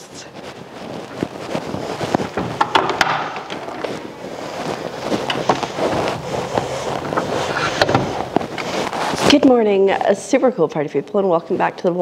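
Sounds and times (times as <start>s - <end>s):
microphone rubbing and rustling: 0.0s - 12.0s
doors clicking and knocking shut: 2.3s - 3.8s, 7.0s - 8.4s.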